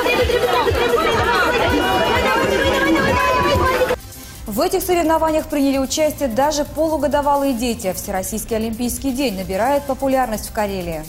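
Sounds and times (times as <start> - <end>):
crowd chattering: 0.0 - 4.0
background music with steady beat: 0.0 - 11.0.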